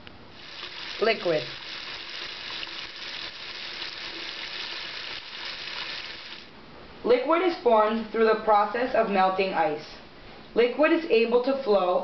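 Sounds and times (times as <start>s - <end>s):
tap water running into sink: 0.4s - 6.5s.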